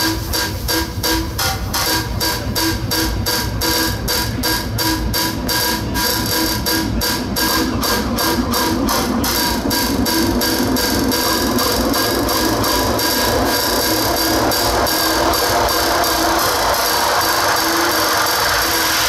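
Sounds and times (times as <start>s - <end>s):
droning synth tones: 0.0s - 19.0s
fast electronic beat: 0.0s - 19.0s.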